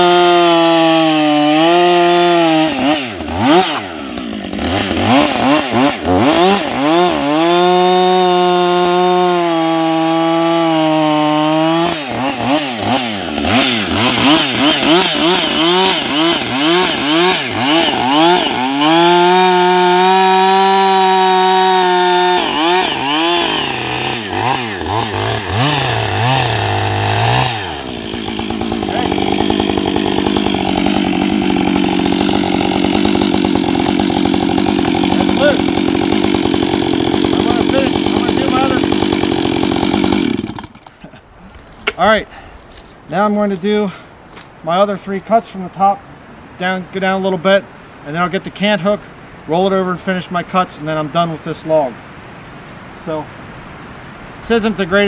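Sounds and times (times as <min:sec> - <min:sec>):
chainsaw cutting a log: 0:00.0 - 0:41.2
chainsaw idling: 0:00.0 - 0:41.2.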